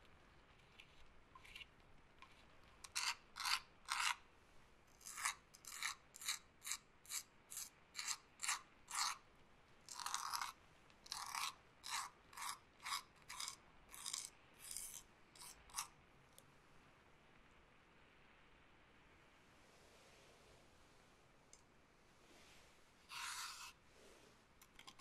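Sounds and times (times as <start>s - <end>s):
scratchy rubbing strokes: 0.5s - 4.2s, 5.0s - 9.2s, 9.9s - 15.9s, 22.2s - 25.0s.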